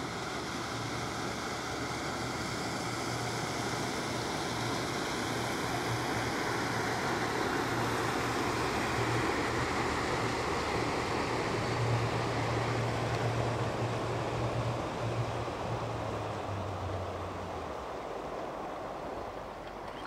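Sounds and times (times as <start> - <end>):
boat engine drone: 0.0 - 20.0.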